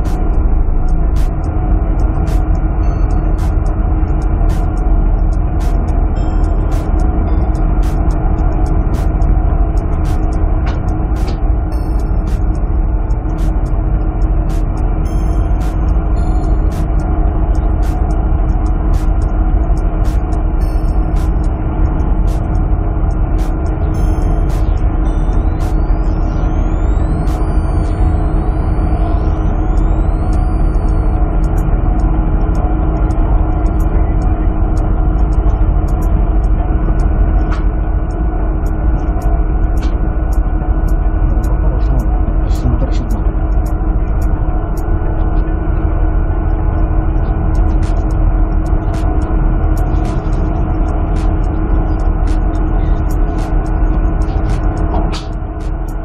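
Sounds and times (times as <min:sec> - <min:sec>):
boat engine low drone: 0:00.0 - 0:56.0
steady machinery hums: 0:00.0 - 0:56.0.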